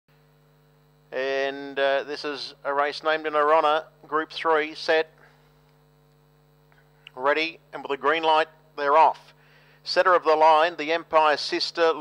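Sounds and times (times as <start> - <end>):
faint electrical hum: 0.1 - 12.0
loud steady pitched tone: 0.2 - 6.1.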